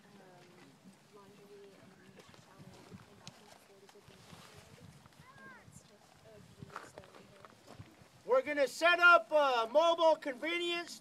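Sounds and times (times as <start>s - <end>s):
footsteps on gravel: 0.2s - 8.4s.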